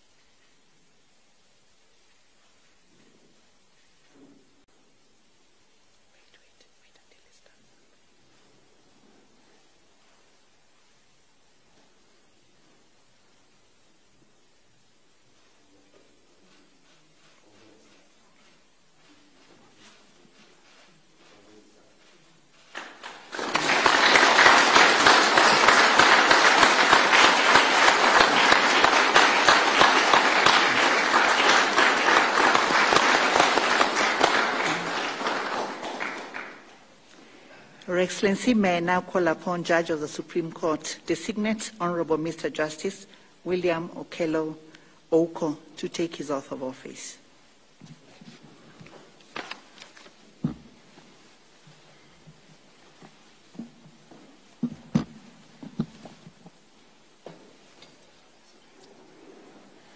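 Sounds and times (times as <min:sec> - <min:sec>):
faint whispering: 0:06.0 - 0:08.5
audience applauding: 0:22.7 - 0:36.9.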